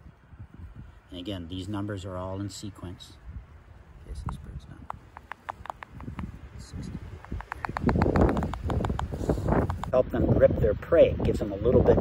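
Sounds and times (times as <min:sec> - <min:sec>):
wind rumbling on microphone: 0:00.0 - 0:12.0
owl chick snapping its bill: 0:04.2 - 0:06.3, 0:07.2 - 0:10.0.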